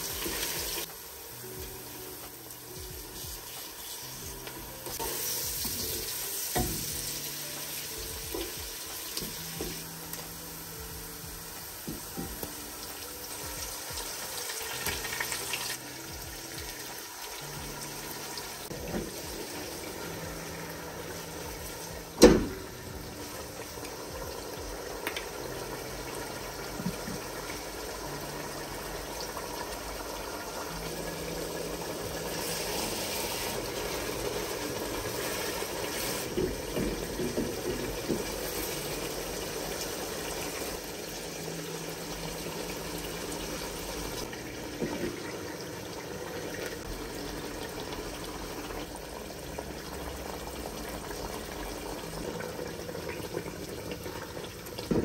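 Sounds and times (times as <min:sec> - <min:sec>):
pot bubbling and sizzling: 0:00.0 - 0:55.0.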